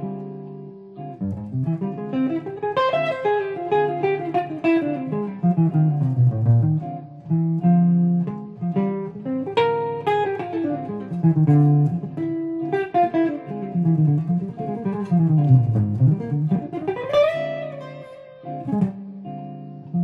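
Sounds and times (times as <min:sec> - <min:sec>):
electric jazz guitar playing: 0:00.0 - 0:20.0.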